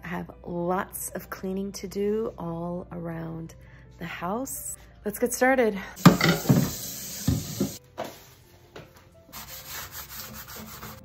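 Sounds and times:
dish brush scrubbing glass: 9.3s - 11.0s.

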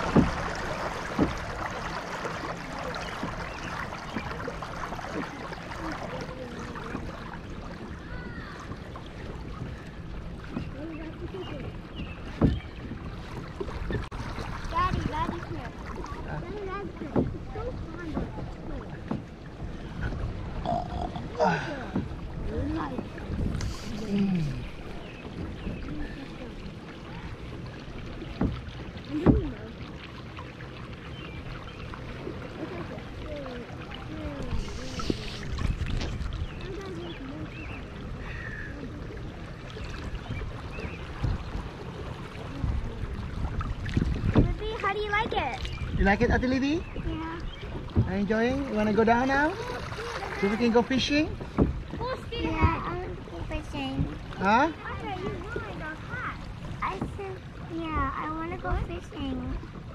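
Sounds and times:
water lapping along kayak hull: 0.0s - 59.9s.

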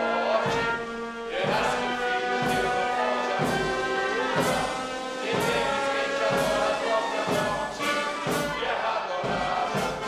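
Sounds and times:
choir singing: 0.0s - 10.0s
orchestra with brass: 0.0s - 10.0s.

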